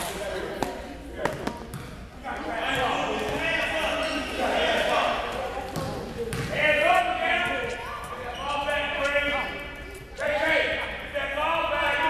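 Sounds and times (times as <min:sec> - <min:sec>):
basketball bouncing on court: 0:00.6 - 0:02.0, 0:05.7 - 0:06.6.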